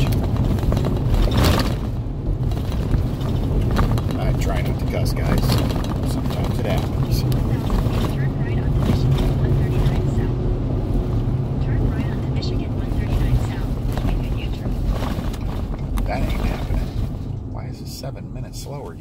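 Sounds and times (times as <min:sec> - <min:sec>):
road and engine rumble in vehicle: 0:00.0 - 0:19.0.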